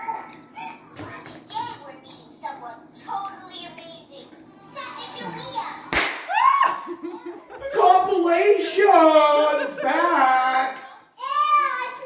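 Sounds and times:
sharp slap: 5.9 - 6.4.

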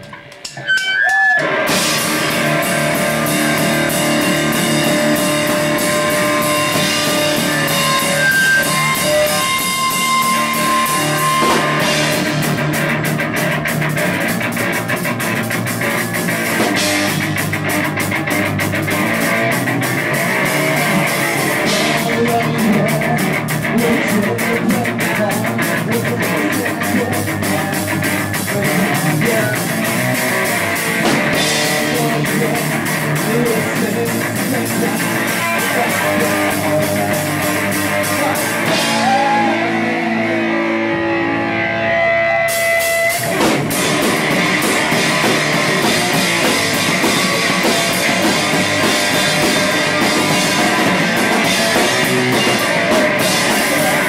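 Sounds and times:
drum kit: 0.0 - 41.3, 41.9 - 54.0
bass guitar: 0.0 - 54.0
electric guitar: 0.0 - 54.0.

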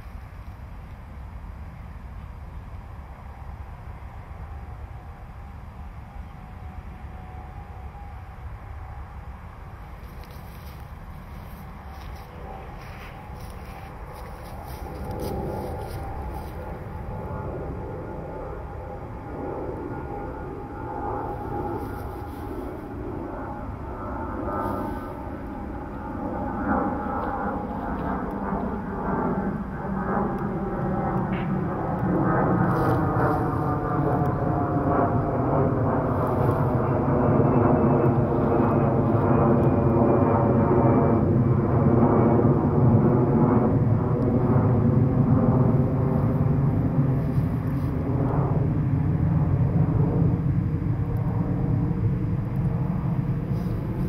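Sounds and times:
jet airliner passing overhead: 0.0 - 54.0.

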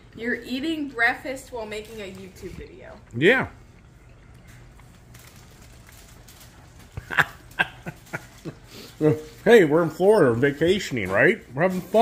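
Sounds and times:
faint low hum: 0.0 - 10.7
man laughing: 7.0 - 8.8.

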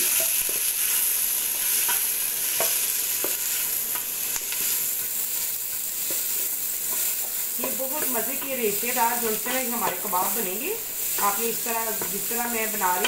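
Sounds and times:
onions sizzling in oil: 0.0 - 13.0.

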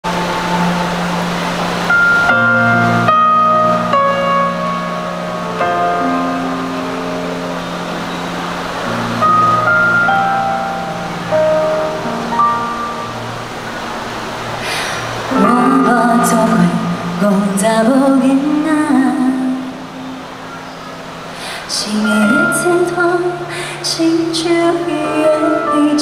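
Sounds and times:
slow ballad over loudspeaker: 0.1 - 26.0.

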